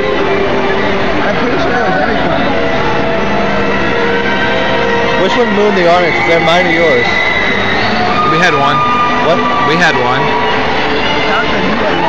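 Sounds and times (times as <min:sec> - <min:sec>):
crowd murmur: 0:00.0 - 0:12.0
people talking: 0:01.1 - 0:02.7, 0:05.2 - 0:07.1, 0:08.2 - 0:10.3.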